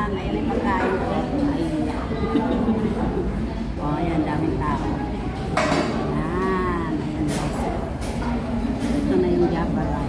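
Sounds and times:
busy restaurant din: 0.0 - 10.0.

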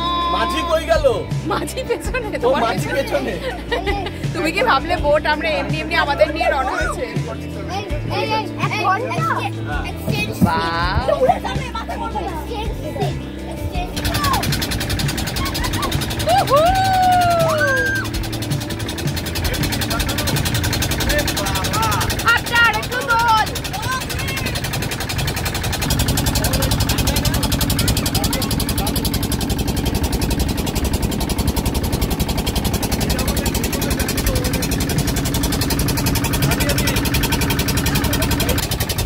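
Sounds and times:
motorboat engine running: 0.0 - 39.0.

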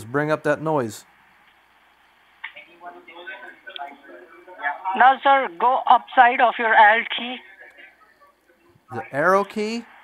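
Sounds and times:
man speaking over phone: 8.9 - 10.0.

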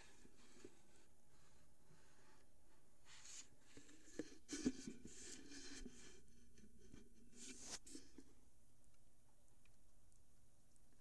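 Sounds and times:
phone and containers rubbing: 3.1 - 8.3.

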